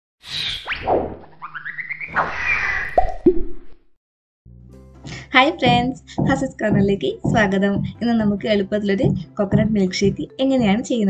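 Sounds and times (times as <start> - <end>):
cartoon plops: 2.9 - 3.8.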